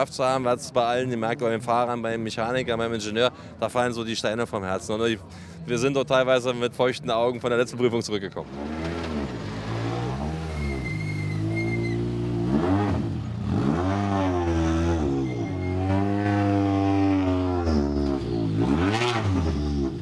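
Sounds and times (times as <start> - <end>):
rally car engine revving: 8.4 - 20.0.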